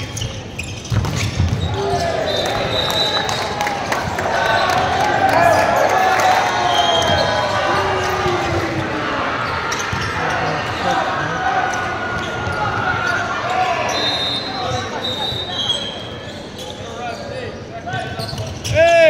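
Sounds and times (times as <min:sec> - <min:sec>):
short high squeaks: 0:00.0 - 0:02.1
voices and shouts: 0:01.6 - 0:16.1.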